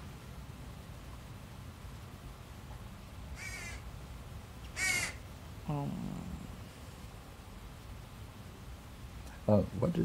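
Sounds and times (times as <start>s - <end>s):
crow cawing: 3.4s - 3.8s, 4.7s - 5.2s.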